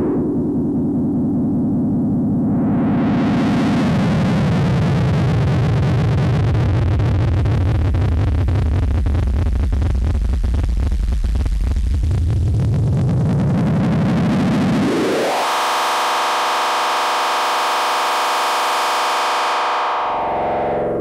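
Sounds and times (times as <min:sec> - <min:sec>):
synthesizer rumbling drone: 0:00.0 - 0:21.0
synthesizer rising pitch glide: 0:15.2 - 0:21.0.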